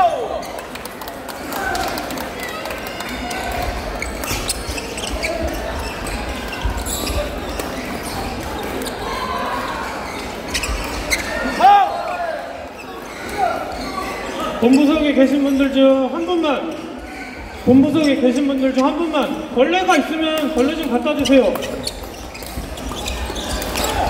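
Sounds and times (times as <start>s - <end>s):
echoing chatter: 0.0s - 24.0s
sneaker squeaks on wooden floor: 3.6s - 19.5s, 20.5s - 24.0s.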